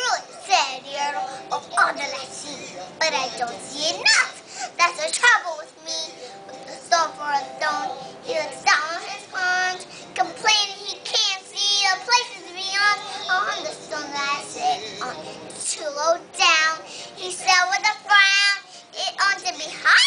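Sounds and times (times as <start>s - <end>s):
girl singing: 0.0s - 20.0s.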